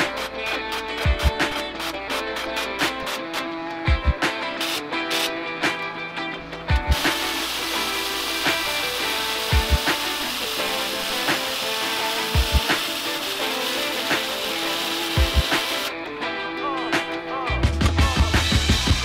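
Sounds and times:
guitar music: 0:00.0 - 0:19.0
arc welding hiss: 0:04.6 - 0:05.3, 0:06.9 - 0:15.9.

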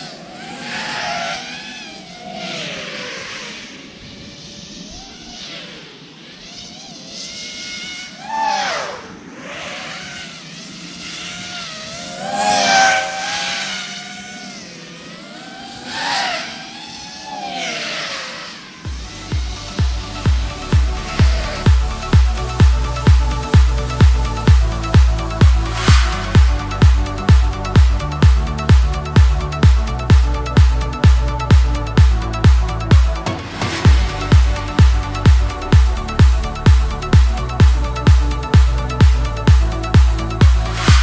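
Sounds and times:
drone motors whining: 0:00.0 - 0:41.0
electronic dance music: 0:18.9 - 0:41.0.

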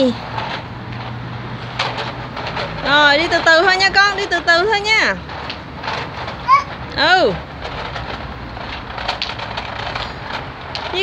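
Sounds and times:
wooden wheels rumbling on concrete: 0:00.0 - 0:11.0.

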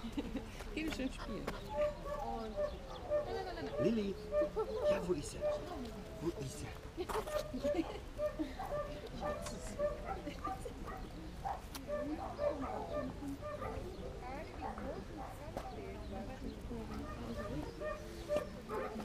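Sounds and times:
people chattering: 0:00.0 - 0:19.0
puppies barking: 0:01.6 - 0:05.9, 0:07.1 - 0:15.9, 0:16.9 - 0:19.0.

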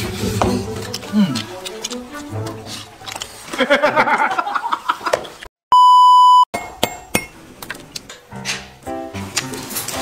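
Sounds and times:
electronic censor bleep: 0:05.7 - 0:06.5.

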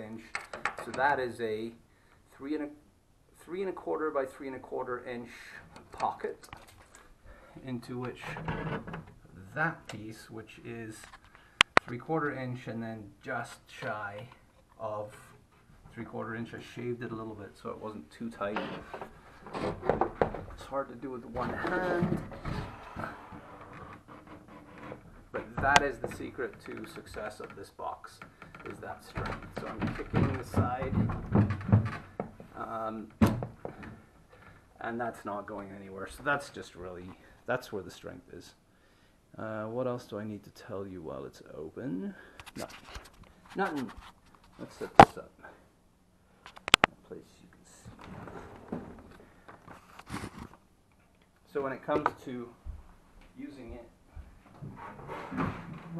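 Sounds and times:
person speaking: 0:11.8 - 0:19.7, 0:20.5 - 0:23.4, 0:25.4 - 0:31.5, 0:39.4 - 0:45.6
wood rubbing: 0:17.1 - 0:34.7.

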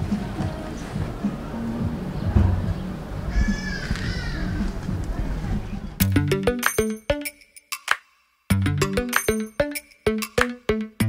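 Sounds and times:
background music: 0:00.0 - 0:03.7, 0:05.9 - 0:11.0.

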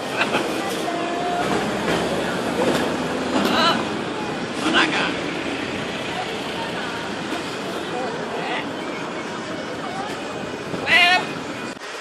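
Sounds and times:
crowd noise: 0:00.0 - 0:12.0
steady traffic: 0:00.0 - 0:12.0.

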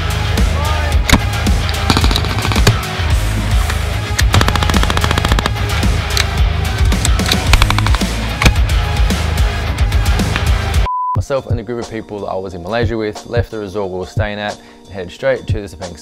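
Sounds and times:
background music with steady beat: 0:00.0 - 0:16.0
machine gun automatic fire: 0:04.3 - 0:05.6.

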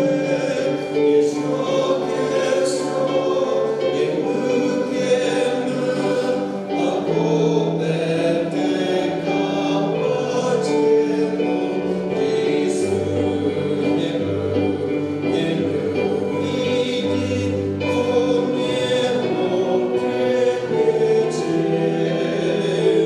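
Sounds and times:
choir singing in harmony: 0:00.0 - 0:23.0.

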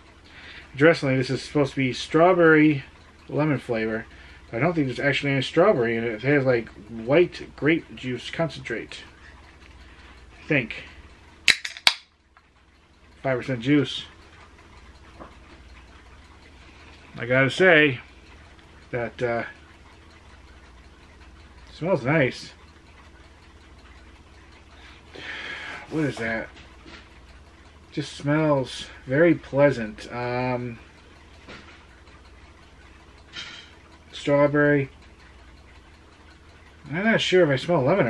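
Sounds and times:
carbonation fizzing and ticking: 0:00.0 - 0:38.0
low steady hum: 0:00.0 - 0:38.0.

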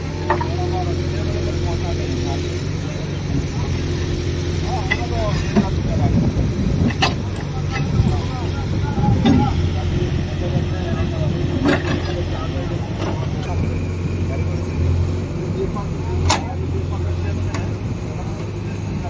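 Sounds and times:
diesel engine running: 0:00.0 - 0:19.0
men talking: 0:00.0 - 0:19.0
metallic clanks: 0:04.6 - 0:05.8, 0:06.8 - 0:08.4, 0:11.5 - 0:12.3.

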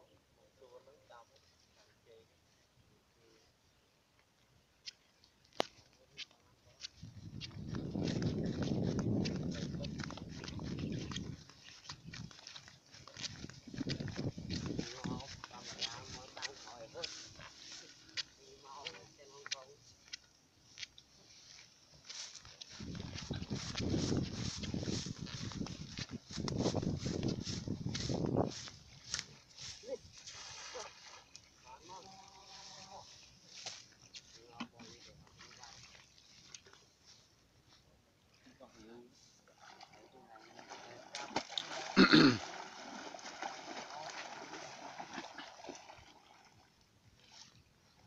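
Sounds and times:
footsteps crunching through dry grass: 0:04.8 - 0:38.4
wind buffeting microphone: 0:07.0 - 0:12.4, 0:13.2 - 0:15.4, 0:22.7 - 0:29.2
net splashing on water: 0:30.2 - 0:31.4, 0:39.6 - 0:47.6.

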